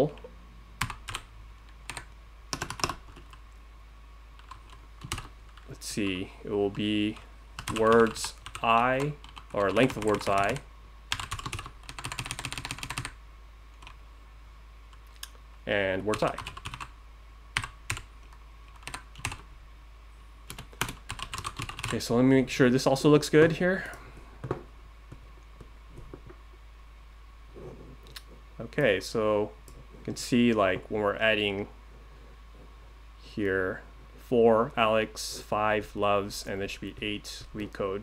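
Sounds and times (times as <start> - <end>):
computer keyboard typing: 0.8 - 3.4, 4.4 - 5.7, 7.6 - 13.2, 16.1 - 16.9, 17.6 - 19.4, 20.5 - 21.9.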